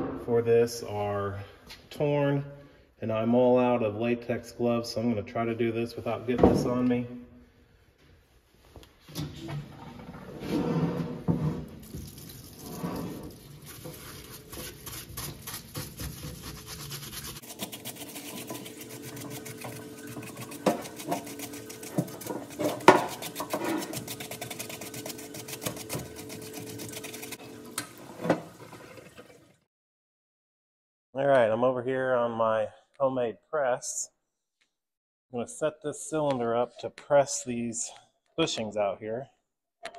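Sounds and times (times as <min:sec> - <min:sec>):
solvent pouring and splashing: 0:11.7 - 0:29.6.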